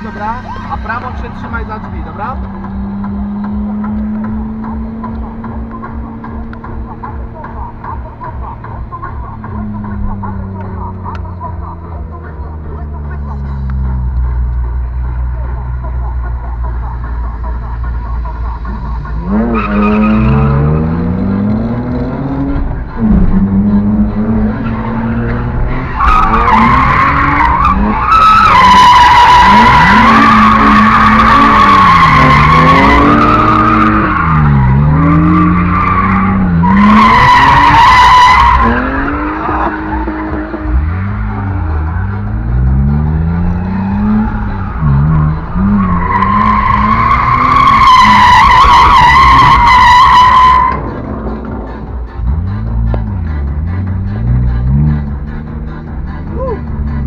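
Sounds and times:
car engine revving: 0.0 - 57.0
tyres squealing: 18.7 - 50.9.

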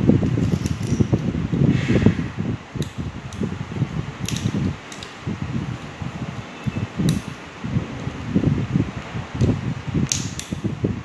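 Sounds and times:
wire rustling and handling: 0.0 - 1.5
wire clicking against metal: 0.2 - 1.4, 2.8 - 3.6, 4.2 - 5.3, 9.3 - 10.7.

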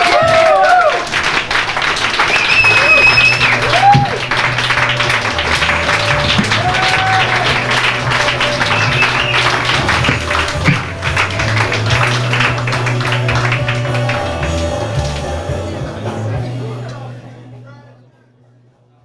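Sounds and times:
crowd noise and voices: 0.0 - 19.0
live band playing: 2.2 - 16.4.

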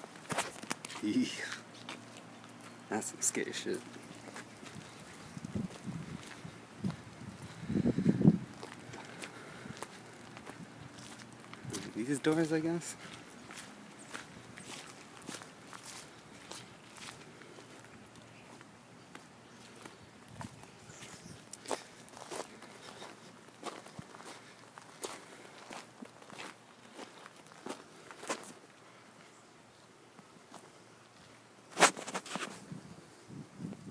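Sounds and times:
footsteps walking: 0.0 - 29.3.

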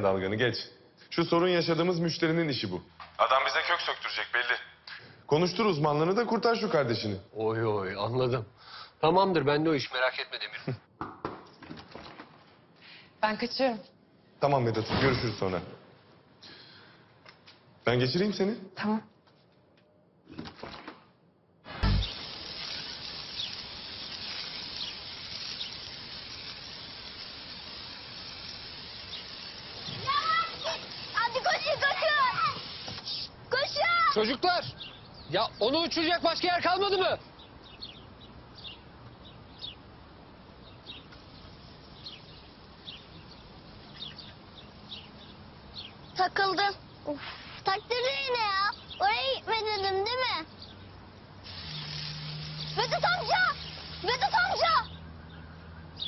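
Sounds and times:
hose nozzle spraying water: 21.7 - 33.3, 51.4 - 54.6
bird chirps: 37.3 - 39.9, 40.6 - 47.1.

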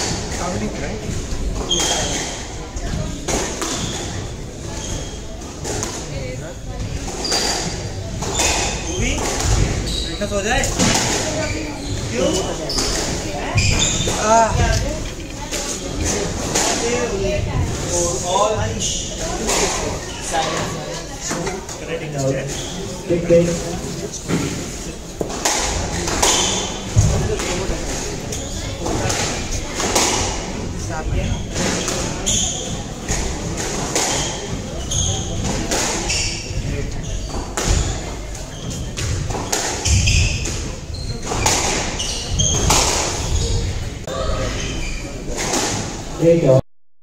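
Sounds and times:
shoes squeaking on wooden floor: 0.0 - 45.6
squash ball hits: 7.0 - 14.8, 25.2 - 28.1, 37.3 - 43.7.

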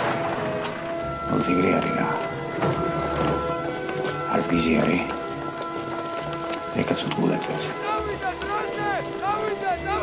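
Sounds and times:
film score held notes: 0.0 - 10.0
rain falling: 0.0 - 10.0.

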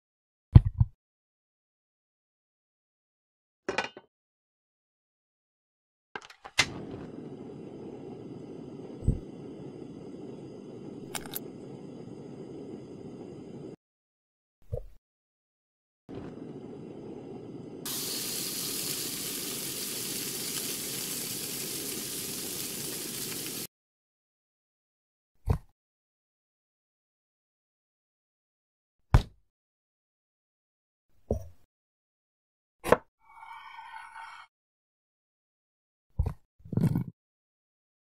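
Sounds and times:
oil sizzling in a pan: 16.5 - 23.7.

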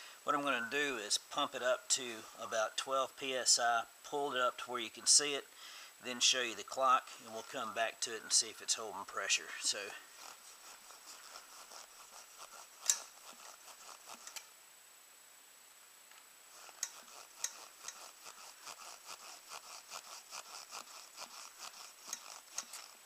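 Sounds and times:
hand pump clicking strokes: 10.1 - 14.4, 16.6 - 23.0.

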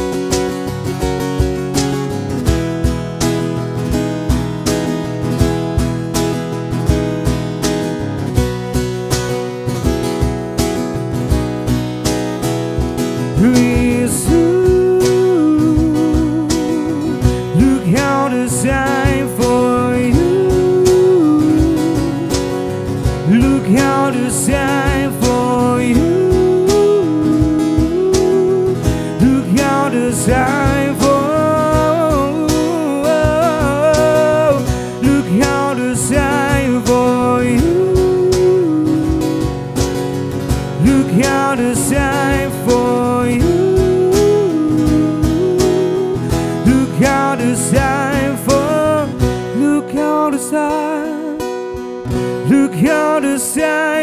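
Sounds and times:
acoustic guitar strumming: 0.0 - 54.0
cajon beat: 0.0 - 54.0
man singing with vibrato: 13.2 - 39.8, 40.6 - 54.0.

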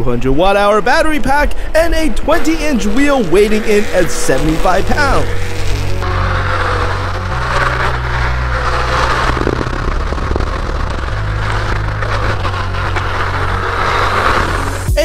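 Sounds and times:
bass line in background music: 0.0 - 15.0
tyre and wind noise: 6.2 - 15.0.

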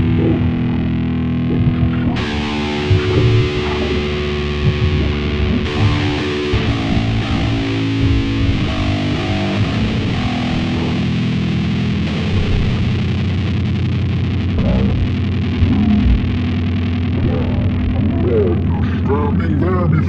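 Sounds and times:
bass guitar: 0.0 - 20.0
distorted electric guitar riff: 0.0 - 20.0.

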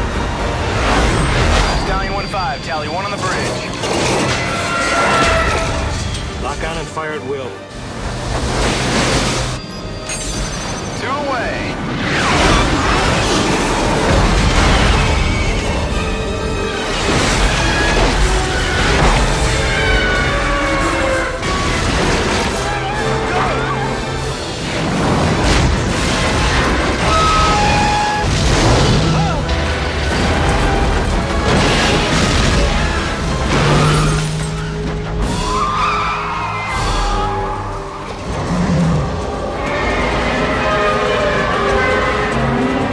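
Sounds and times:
orchestral music: 0.0 - 42.9
explosion booms and crashes: 24.6 - 34.0.

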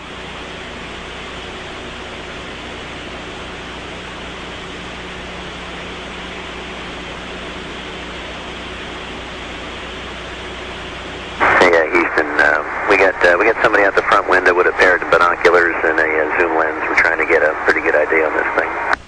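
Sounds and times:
faint low hum: 0.0 - 19.0
radio static hiss: 0.0 - 19.0.

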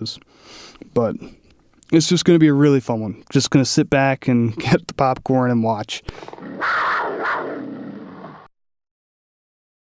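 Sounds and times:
lion roar: 6.1 - 8.5.

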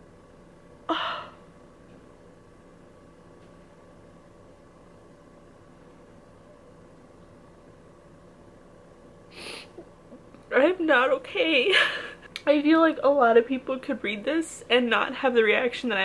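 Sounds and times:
faint steady hum: 0.0 - 16.0
sharp sniff: 9.3 - 9.8.

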